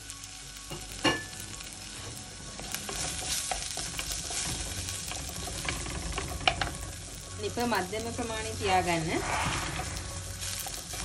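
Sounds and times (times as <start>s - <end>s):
onions sizzling in oil: 0.0s - 11.0s
wooden spoon stirring and scraping: 2.5s - 11.0s.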